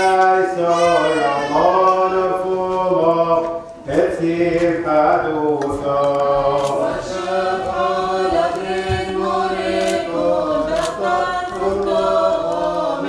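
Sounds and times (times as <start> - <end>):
liturgical chant singing: 0.0 - 13.0.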